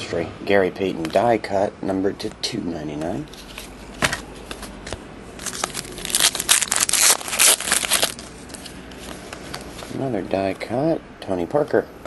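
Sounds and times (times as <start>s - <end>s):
cards shuffled by hand: 3.3s - 10.0s.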